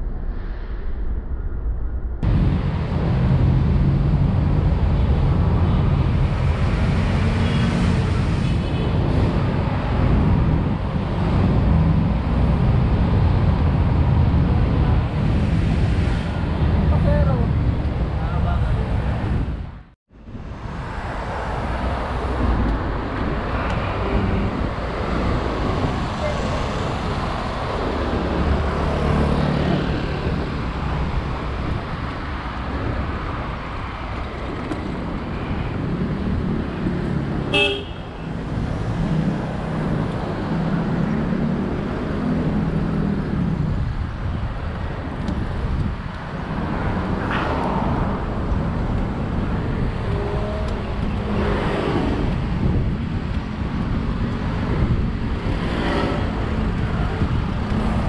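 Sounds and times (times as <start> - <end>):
cars and motorbikes passing: 2.2 - 58.0
vehicle horn: 37.5 - 38.3.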